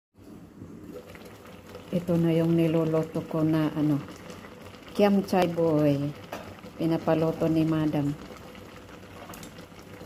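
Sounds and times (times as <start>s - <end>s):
soup bubbling in a pot: 0.4s - 10.0s.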